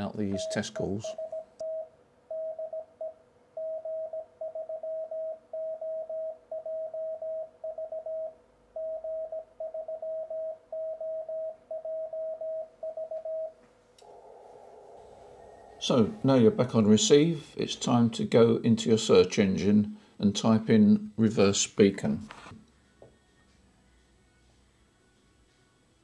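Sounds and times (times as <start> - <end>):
morse code tone: 0.0 - 2.9
receiver hiss: 18.9 - 22.7.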